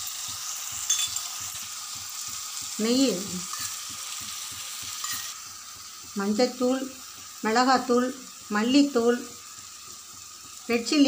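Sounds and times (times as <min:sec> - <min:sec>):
vegetables sizzling in oil: 0:00.0 - 0:11.0
metallic clink: 0:00.8 - 0:01.4, 0:05.0 - 0:05.4.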